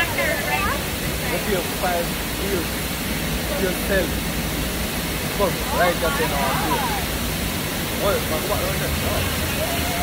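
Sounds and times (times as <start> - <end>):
people's voices: 0.0 - 4.2, 5.2 - 10.0
waterfall rushing: 0.0 - 10.0.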